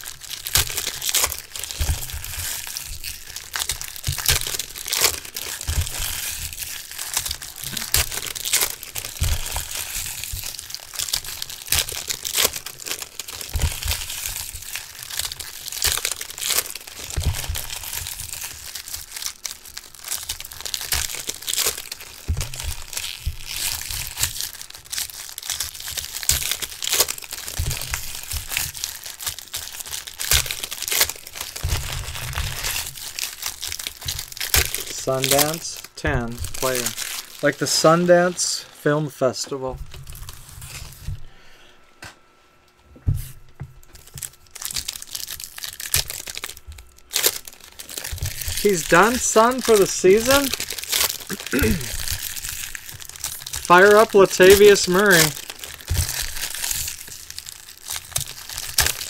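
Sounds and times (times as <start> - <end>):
foil wrappers crinkling: 0.0 - 41.6, 43.8 - 59.0.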